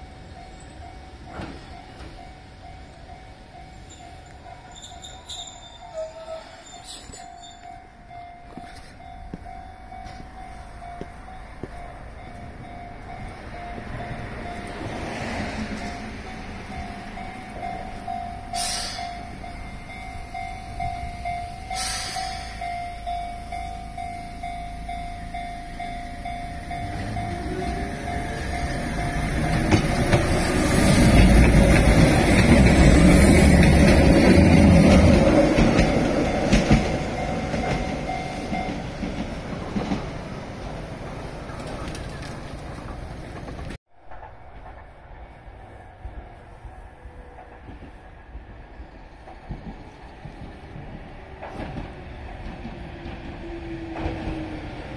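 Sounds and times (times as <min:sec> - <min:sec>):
train wheels rumbling on rails: 0:00.0 - 0:54.9
train motor whine: 0:11.0 - 0:38.9
level crossing bell ringing: 0:15.8 - 0:29.8.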